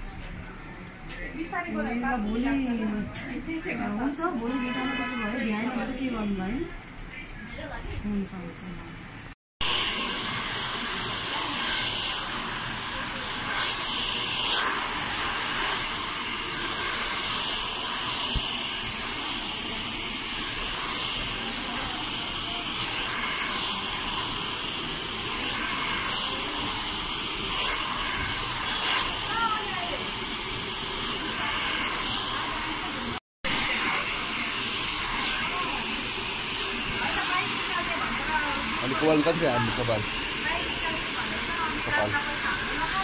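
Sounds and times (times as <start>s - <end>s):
hair dryer blowing: 9.6s - 43.0s.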